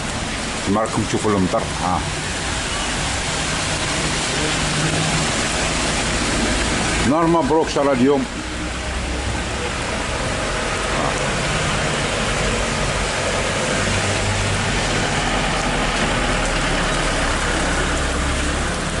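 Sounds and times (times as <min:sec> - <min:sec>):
rain hissing: 0:00.0 - 0:19.0
traffic on wet road: 0:00.0 - 0:19.0
low vehicle engine hum: 0:01.9 - 0:19.0.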